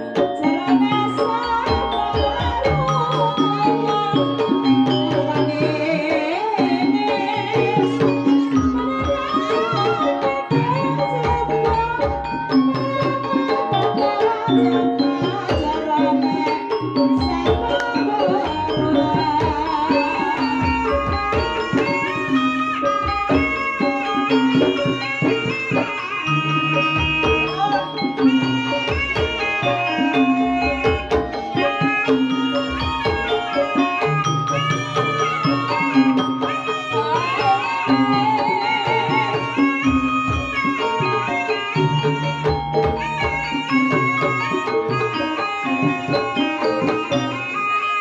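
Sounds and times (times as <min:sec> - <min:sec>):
hand drum strokes: 0:00.0 - 0:48.0
ringing xylophone-like melody: 0:00.0 - 0:48.0.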